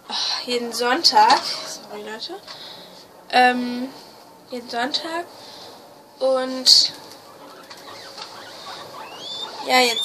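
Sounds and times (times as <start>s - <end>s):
guinea pig calls: 6.8s - 10.0s
guinea pigs chewing: 6.8s - 10.0s.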